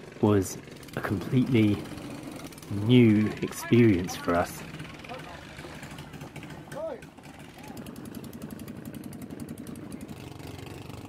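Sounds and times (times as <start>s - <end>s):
boat engine running: 0.0s - 11.0s
person speaking: 2.7s - 5.5s.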